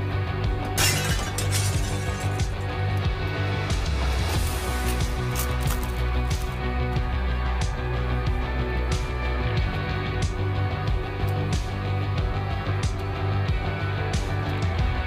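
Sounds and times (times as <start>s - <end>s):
background music: 0.0s - 15.0s
foil wrappers crinkling and tearing: 4.4s - 6.6s.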